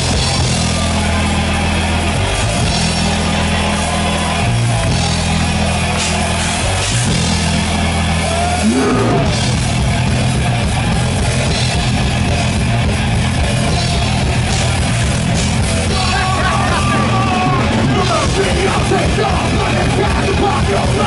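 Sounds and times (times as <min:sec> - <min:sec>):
metal band playing live: 0:00.0 - 0:21.0.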